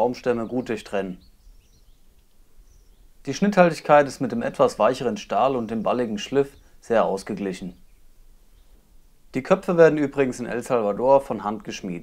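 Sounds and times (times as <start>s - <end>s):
person speaking: 0.0s - 1.2s, 9.3s - 12.0s
faint outdoor background noise: 0.0s - 12.0s
high short bird chirps: 1.2s - 3.1s, 7.8s - 8.9s.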